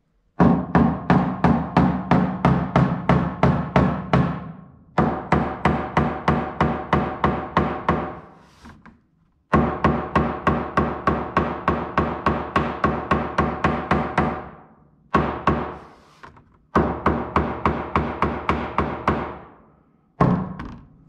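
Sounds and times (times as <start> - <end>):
hammer tapping on sheet metal: 0.4 - 8.2, 9.5 - 15.8, 16.7 - 19.5.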